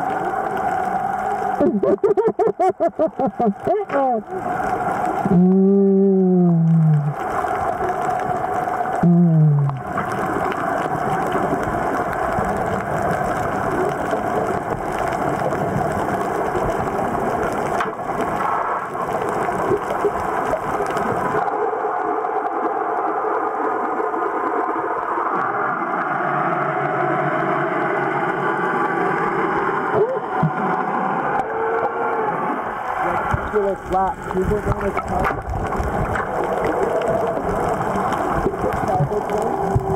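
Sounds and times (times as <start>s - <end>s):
muffled underwater rushing: 0.0s - 39.9s.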